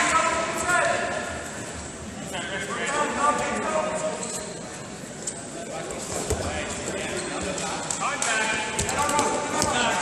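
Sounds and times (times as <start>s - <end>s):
voices calling out in a hall: 0.0s - 10.0s.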